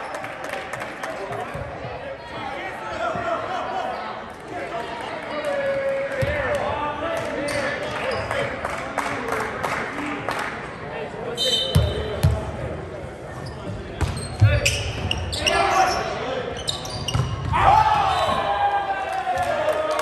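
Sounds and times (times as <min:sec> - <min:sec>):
sneakers squeaking: 0:11.3 - 0:12.5, 0:13.3 - 0:18.5
players shouting: 0:17.4 - 0:20.0.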